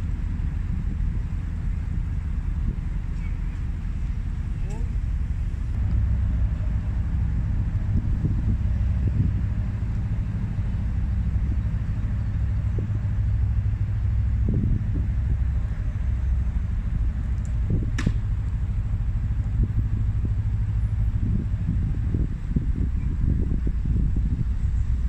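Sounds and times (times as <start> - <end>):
boat diesel engine rumbling: 0.0 - 25.0.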